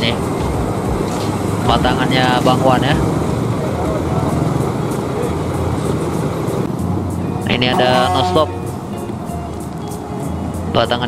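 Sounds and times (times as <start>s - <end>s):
vehicle engines idling: 0.0s - 11.0s.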